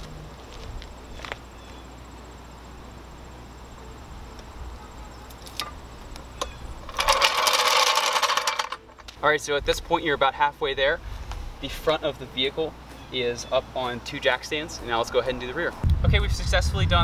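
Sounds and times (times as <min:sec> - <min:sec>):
floor jack rattling on asphalt: 0:06.4 - 0:09.2
wind rumbling on microphone: 0:15.8 - 0:17.0.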